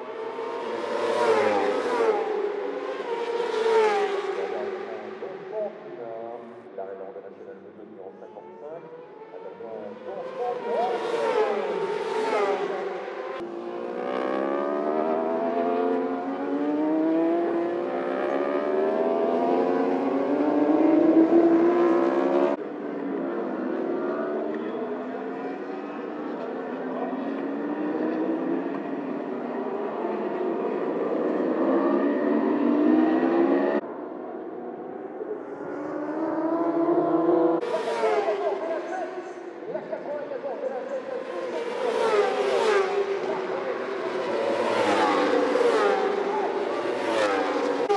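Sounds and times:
motorbikes passing by: 0.1 - 47.9.

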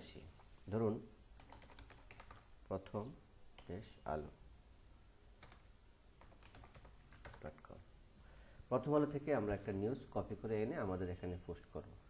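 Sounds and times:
computer keyboard keystrokes: 1.4 - 2.5, 5.4 - 7.5.

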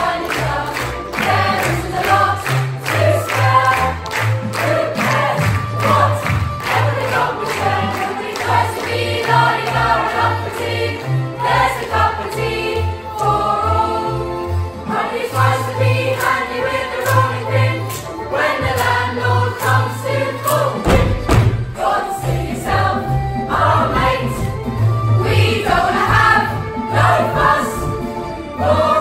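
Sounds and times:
children's choir singing: 0.0 - 29.0.

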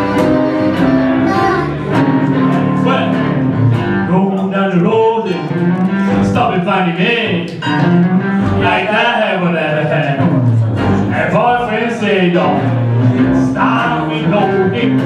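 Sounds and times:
live blues band playing: 0.0 - 15.0.

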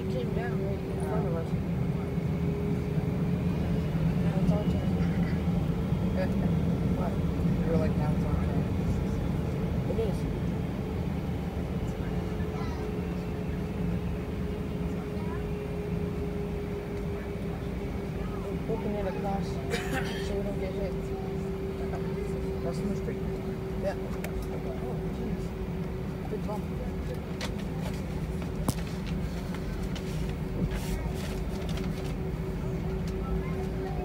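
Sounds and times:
jet engines rumbling in cabin: 0.0 - 34.0.

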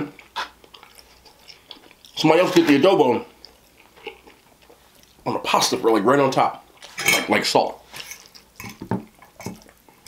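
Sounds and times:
close chewing of spaghetti: 0.1 - 2.2, 3.2 - 5.3, 8.0 - 10.0.

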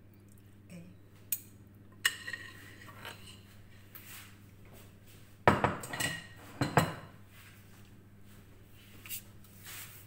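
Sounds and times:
cutlery and dishes clattering: 2.0 - 3.4, 5.5 - 7.2.

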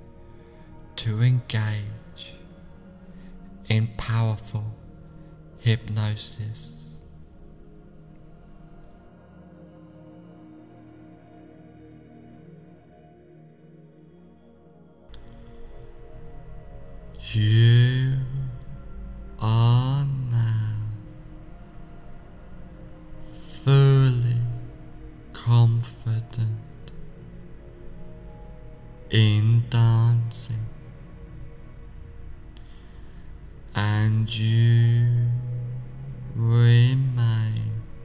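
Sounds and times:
deep voice chanting low syllable: 0.0 - 7.2, 16.0 - 27.7, 28.9 - 31.8, 32.6 - 38.0
faint background music: 0.0 - 38.0.

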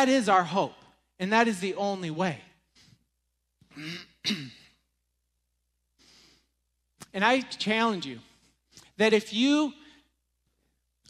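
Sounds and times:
man clearing his throat: 3.6 - 4.8
faint breath: 6.0 - 6.6.

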